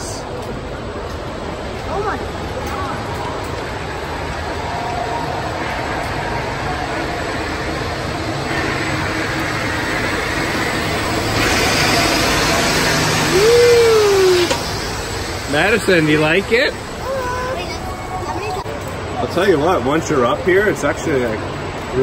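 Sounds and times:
ferris wheel rushing rumble: 0:00.0 - 0:22.0
rising and falling tone: 0:05.4 - 0:17.2.

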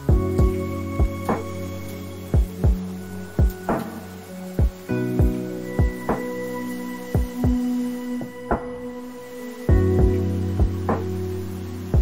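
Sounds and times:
sustained chords: 0:00.0 - 0:12.0.

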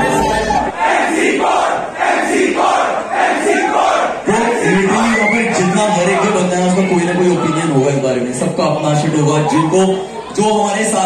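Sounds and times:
crowd shouting rhythmically: 0:00.0 - 0:06.6
man's amplified voice: 0:04.2 - 0:11.0.

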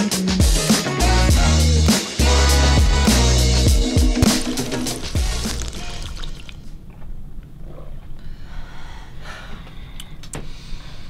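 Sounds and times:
theme music with heavy bass: 0:00.0 - 0:06.3.

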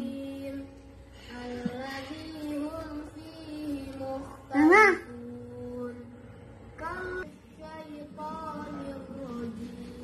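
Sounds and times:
child chanting in sing-song: 0:01.3 - 0:06.0, 0:06.8 - 0:10.0.

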